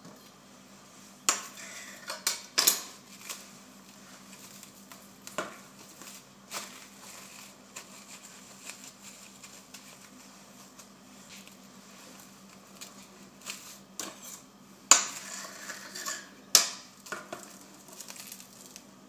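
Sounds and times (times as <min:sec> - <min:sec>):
plastic cling film crinkling: 0:02.8 - 0:14.2, 0:16.9 - 0:19.0.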